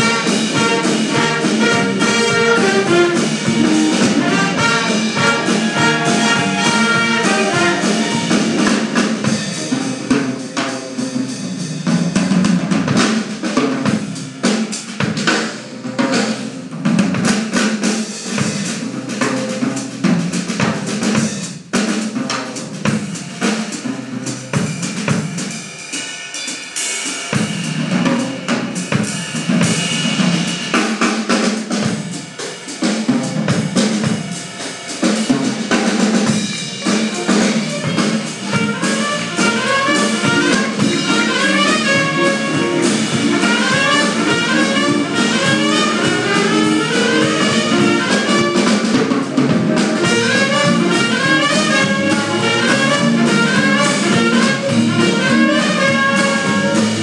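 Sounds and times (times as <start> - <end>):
horns playing: 0.0 - 10.0, 36.8 - 49.0, 49.6 - 57.0
jazz ensemble playing: 0.0 - 26.4, 27.0 - 57.0
drum kit playing: 0.0 - 57.0.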